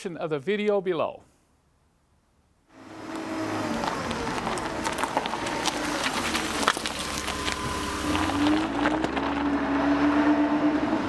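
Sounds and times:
engine running with rising pitch: 0:02.7 - 0:11.0.

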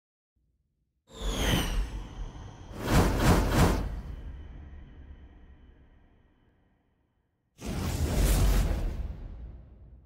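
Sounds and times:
swoosh with falling whistling tones: 0:01.1 - 0:02.9.

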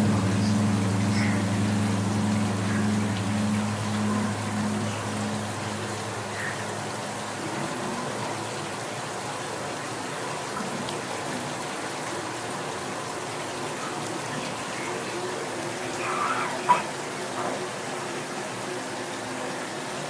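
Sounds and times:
shower spray running: 0:00.0 - 0:06.6
low hum: 0:00.0 - 0:07.3.

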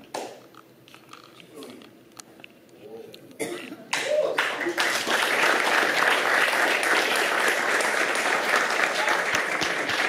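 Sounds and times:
person coughing: 0:03.4 - 0:03.8
audience applause: 0:04.2 - 0:10.0.

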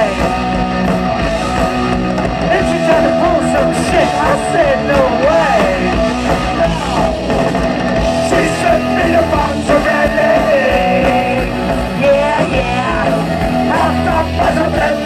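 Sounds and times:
bass guitar: 0:00.0 - 0:15.0
drums: 0:00.0 - 0:15.0
electric guitar: 0:00.0 - 0:15.0
person singing: 0:02.5 - 0:07.2, 0:08.2 - 0:15.0.

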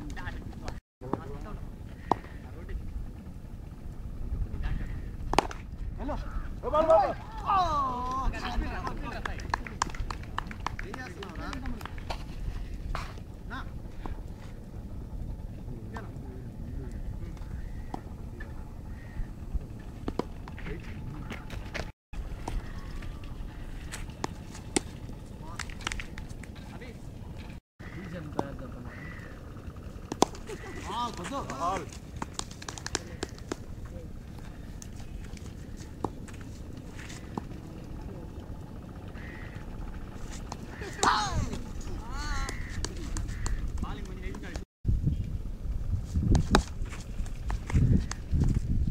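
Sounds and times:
distant voices calling: 0:00.0 - 0:44.7
steady low rumble: 0:00.0 - 0:48.9.

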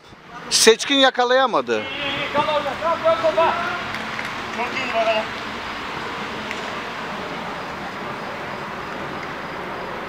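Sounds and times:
outdoor ambience hiss: 0:00.0 - 0:10.0
man speaking: 0:00.4 - 0:03.9.

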